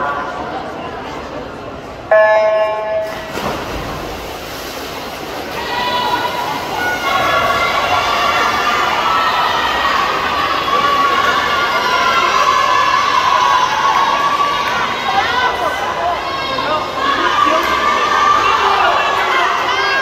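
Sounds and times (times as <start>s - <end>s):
swimmers splashing: 2.1s - 20.0s
spectators cheering and shouting: 5.2s - 20.0s.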